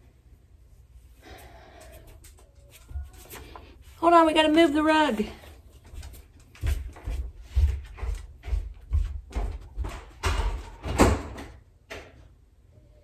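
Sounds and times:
irregular knocks and thuds: 5.9s - 12.2s.

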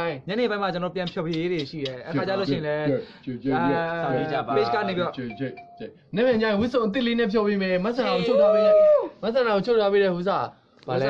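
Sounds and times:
young men's voices: 0.0s - 11.0s
short beep tone: 4.7s - 6.0s.

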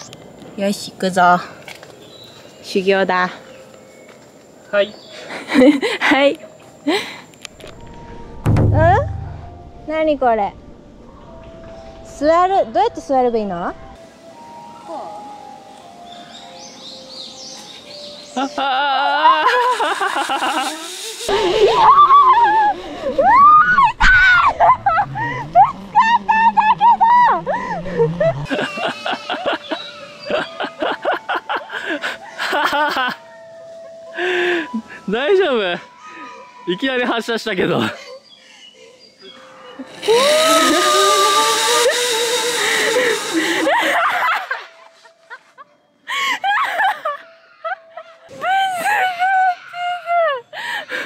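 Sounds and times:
birds chirping: 0.0s - 8.4s, 14.7s - 19.0s, 24.3s - 40.9s
soft background music: 6.1s - 20.1s, 28.4s - 40.0s, 43.8s - 51.0s
person crying out: 18.6s - 19.9s, 39.8s - 44.2s
trolley rushing along steel cable: 19.6s - 23.5s, 39.9s - 43.8s.

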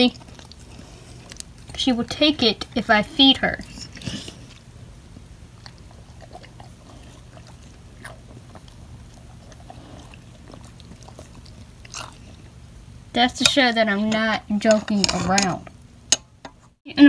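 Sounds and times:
dog chewing and licking: 0.0s - 12.7s
low steady hum: 0.0s - 17.0s.

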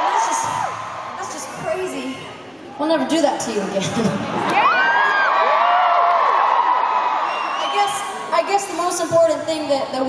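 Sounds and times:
arena crowd cheering: 0.0s - 2.3s, 4.3s - 9.0s.

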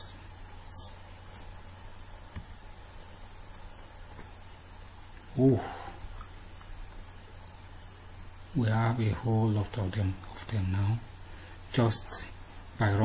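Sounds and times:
faint high-pitched whine: 0.0s - 13.0s
low hum and hiss: 0.0s - 13.0s.

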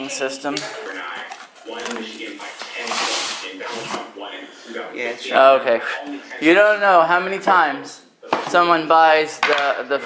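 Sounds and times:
quiet voices talking: 0.0s - 10.0s.

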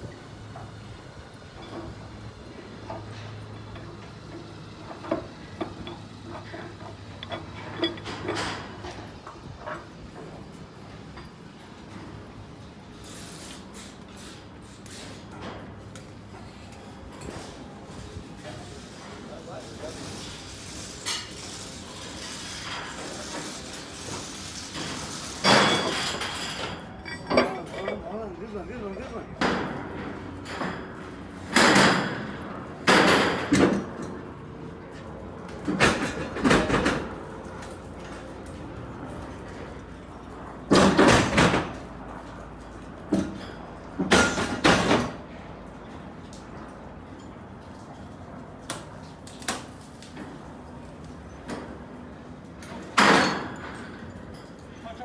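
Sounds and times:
workers talking: 17.2s - 21.6s, 26.6s - 30.4s
metal clanks and bangs: 24.9s - 28.2s.

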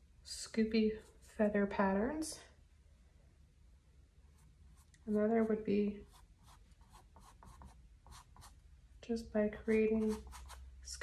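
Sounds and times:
paintbrush strokes on canvas: 4.3s - 8.6s, 9.6s - 10.7s.

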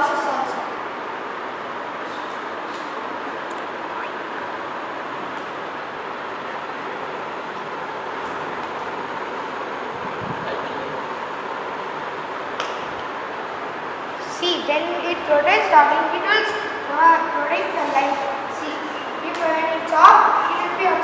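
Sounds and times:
steady rushing noise: 3.0s - 18.7s.

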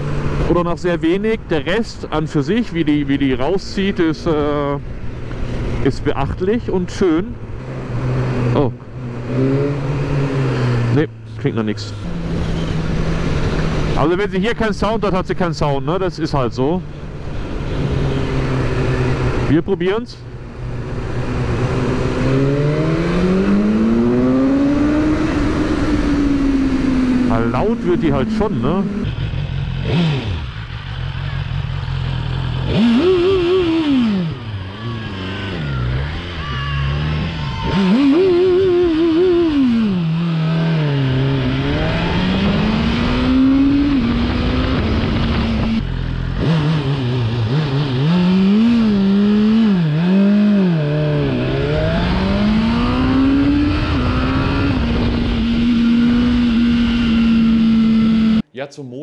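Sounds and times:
motorcycle engine revving: 0.0s - 1.8s, 2.4s - 15.3s, 16.6s - 58.4s.

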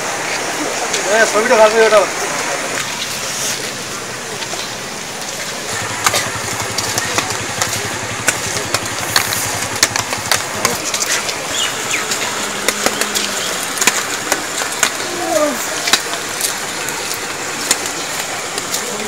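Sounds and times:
steady hiss: 0.0s - 19.0s
small engine idling: 2.8s - 19.0s.

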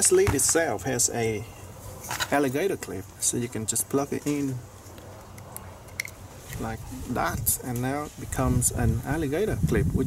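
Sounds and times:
man speaking: 2.3s - 4.7s.

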